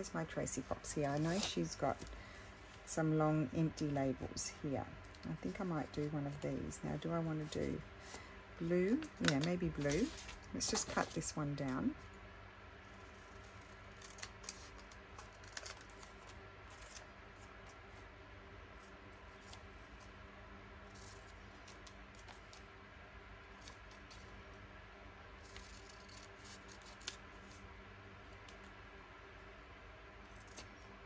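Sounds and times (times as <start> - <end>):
paper scraping: 8.9 - 11.4
scissors snipping paper: 25.4 - 27.2.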